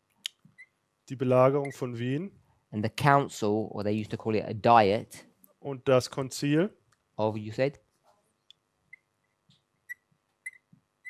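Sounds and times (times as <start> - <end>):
marker squeaking on whiteboard: 8.9 - 10.7.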